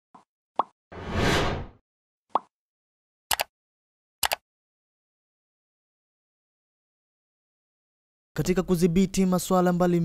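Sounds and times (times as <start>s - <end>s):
whoosh: 1.0s - 1.8s.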